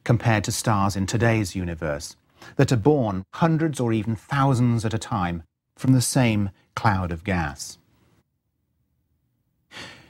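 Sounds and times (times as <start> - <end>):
man breathing in: 9.7 - 10.0.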